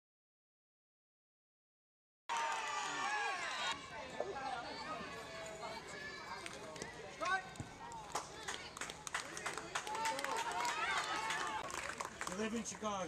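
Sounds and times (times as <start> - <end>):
people calling and shouting: 2.7 - 11.7.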